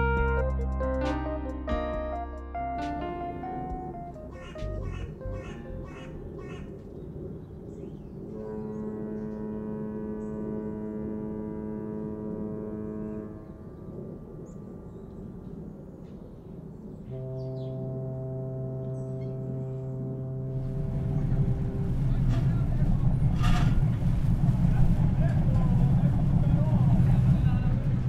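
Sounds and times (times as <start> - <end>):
steady low rumble: 0.0 - 8.4, 13.2 - 28.0
ship's horn blasts: 8.2 - 14.8, 17.1 - 28.0.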